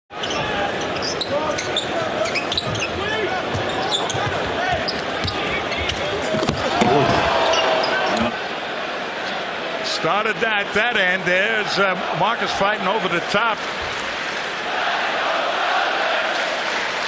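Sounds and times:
sneakers squeaking: 0.2s - 8.2s
basketball bouncing: 2.6s - 7.3s.

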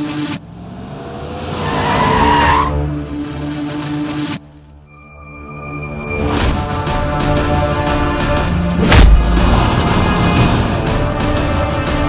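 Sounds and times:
car tyres skidding: 0.9s - 4.0s.

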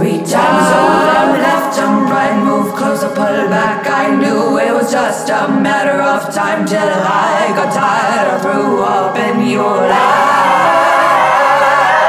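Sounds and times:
woman singing layered harmonies: 0.0s - 12.0s.

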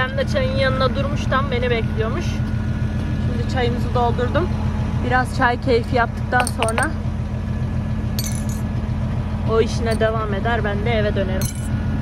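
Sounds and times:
tractor engine idling: 0.0s - 12.0s
teaspoon clinking against glass: 8.2s - 8.6s, 11.4s - 11.7s.

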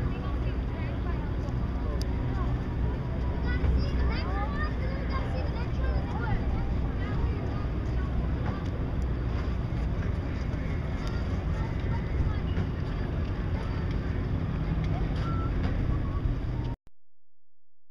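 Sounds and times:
faint distant voices: 0.0s - 16.6s
wind rumbling on microphone: 0.0s - 16.8s.

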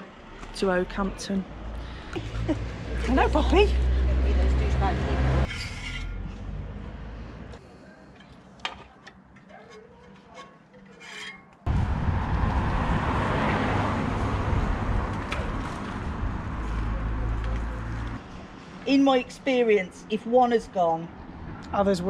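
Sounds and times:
loud rushing noise: 11.7s - 16.6s.

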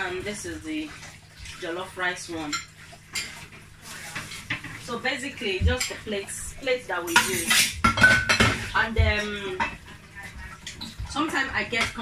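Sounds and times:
ceramic plates clinking: 7.0s - 9.9s.

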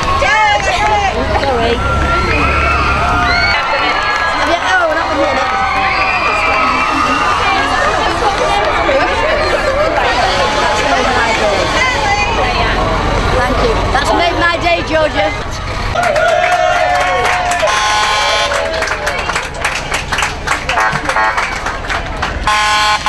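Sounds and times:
bus idling: 0.0s - 23.0s
crowd chattering: 0.0s - 23.0s
bus horn hoot: 9.9s - 12.6s, 17.6s - 18.7s, 20.7s - 21.5s, 22.4s - 23.0s.

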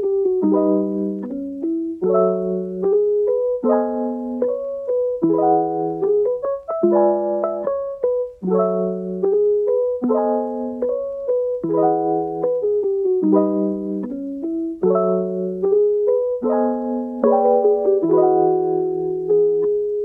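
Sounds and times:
gentle piano music: 0.0s - 20.0s.

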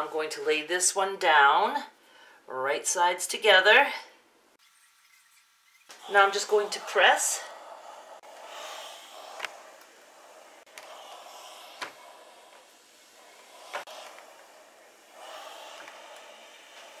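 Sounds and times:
iron rubbing over fabric: 4.6s - 17.0s.

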